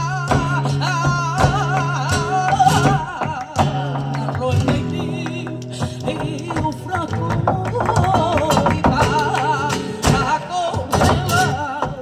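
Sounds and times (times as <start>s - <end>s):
flamenco guitar: 0.0s - 12.0s
person singing flamenco: 0.0s - 12.0s.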